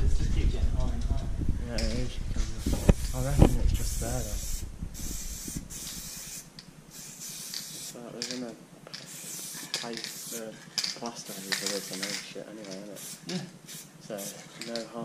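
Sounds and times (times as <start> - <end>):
spray-paint can hissing: 2.6 - 8.4, 9.0 - 14.5.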